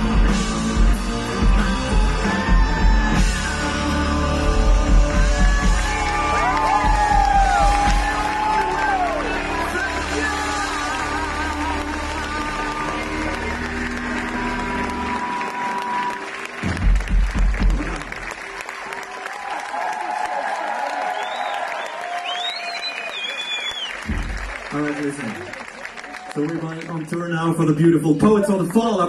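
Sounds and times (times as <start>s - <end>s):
rock band playing: 0.0s - 18.7s
crowd applauding and cheering: 0.0s - 29.0s
whistles: 21.1s - 24.3s.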